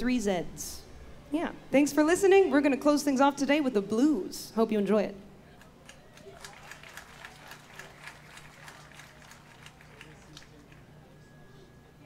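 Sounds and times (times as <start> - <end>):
faint sound system hum: 0.0 - 12.0.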